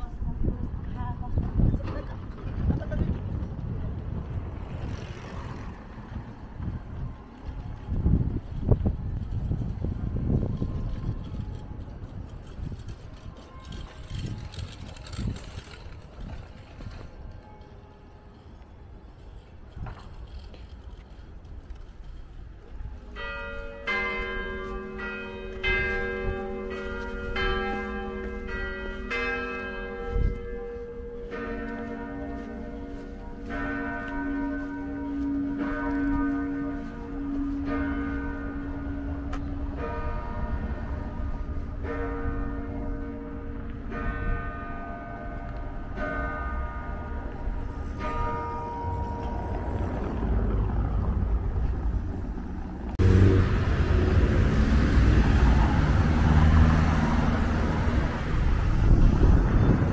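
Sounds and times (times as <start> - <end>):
street traffic: 0.0 - 59.9
deeper church bell ringing: 22.8 - 50.8
higher church bell ringing: 22.8 - 50.8.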